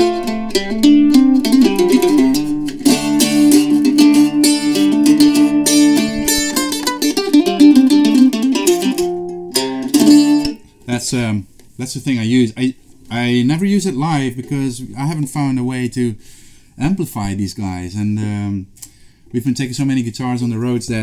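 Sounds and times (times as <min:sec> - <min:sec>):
mandola picked notes and chords: 0:00.0 - 0:10.6.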